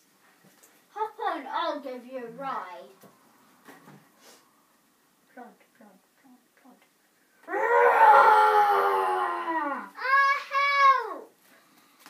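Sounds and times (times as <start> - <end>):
child's long falling vocal call: 7.5 - 10.6.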